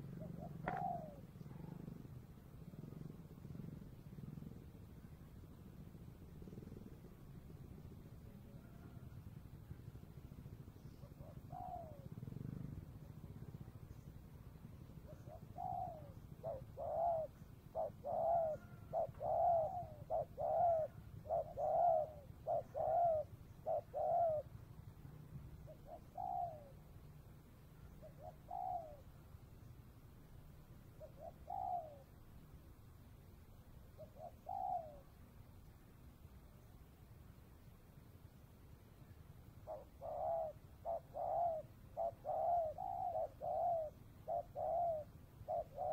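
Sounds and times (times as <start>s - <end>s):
dove cooing: 0.0s - 27.0s, 27.7s - 29.4s, 30.8s - 32.2s, 33.9s - 35.2s, 39.5s - 45.9s.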